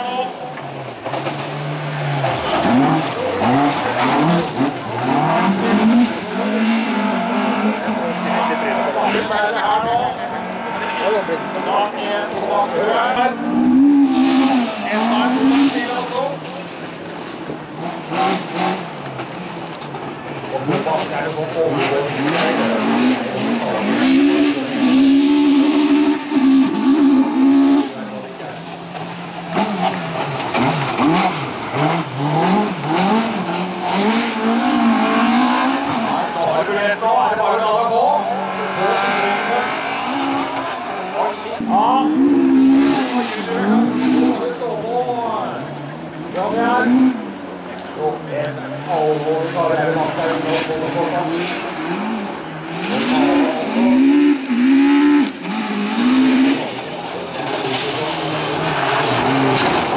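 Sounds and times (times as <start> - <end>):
car engines revving: 0.0 - 59.9.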